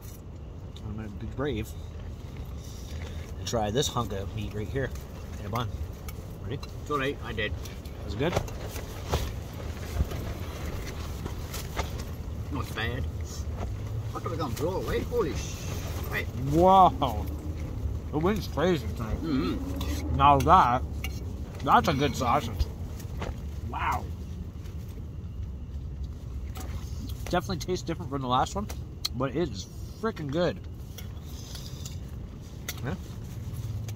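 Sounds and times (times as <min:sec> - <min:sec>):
faint rustle: 0:01.6 - 0:20.2.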